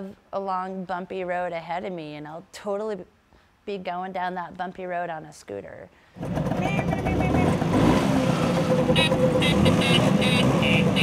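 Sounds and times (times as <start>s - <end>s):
scooters idling: 6.2s - 11.0s.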